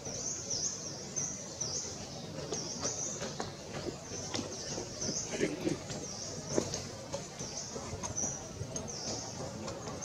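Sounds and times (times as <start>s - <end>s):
bird chirping: 0.0s - 10.0s.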